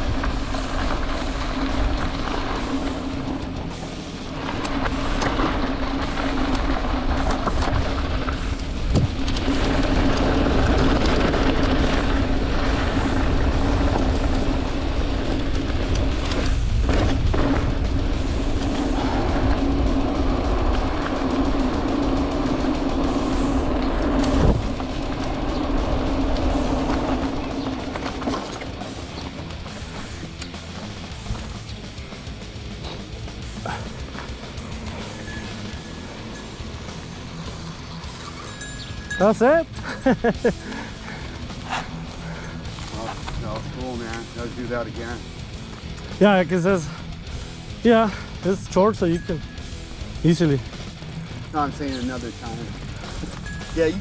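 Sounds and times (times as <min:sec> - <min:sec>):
freewheel hub buzzing: 0:00.0 - 0:54.0
tyres rumbling on loose ground: 0:00.0 - 0:54.0
wind rushing over microphone: 0:04.3 - 0:30.0.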